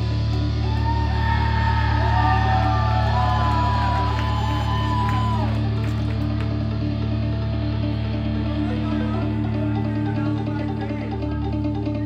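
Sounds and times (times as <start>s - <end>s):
electric guitar bending lead notes: 0.0s - 12.0s
held chords: 0.0s - 12.0s.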